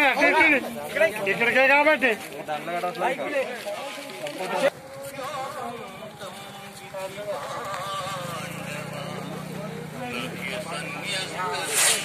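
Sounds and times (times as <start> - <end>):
crowd voices talking and calling: 0.0 - 12.0.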